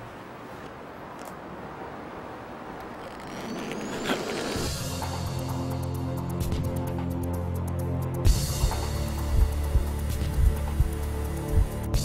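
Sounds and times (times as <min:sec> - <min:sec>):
thin high rising tone: 0:02.8 - 0:04.9.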